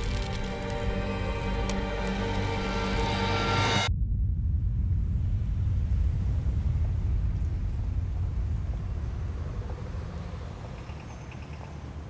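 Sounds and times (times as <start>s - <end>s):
city street traffic rumble: 0.0s - 3.3s, 5.9s - 12.0s.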